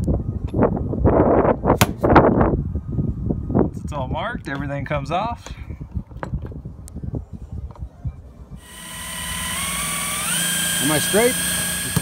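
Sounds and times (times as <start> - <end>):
cordless drill drilling sheet metal: 8.6 - 12.0.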